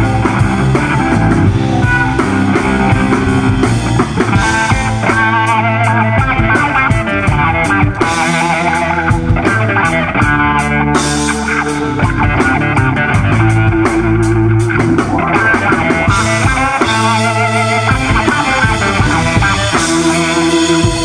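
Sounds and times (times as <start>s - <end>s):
bass: 0.0s - 21.0s
drums: 0.0s - 21.0s
electric guitar: 0.0s - 21.0s
keyboard: 0.0s - 21.0s.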